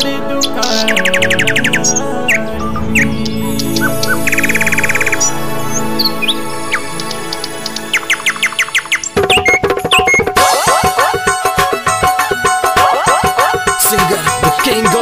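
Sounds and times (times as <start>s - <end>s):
bird chirps and trills: 0.0s - 15.0s
keyboard held chords: 0.0s - 15.0s.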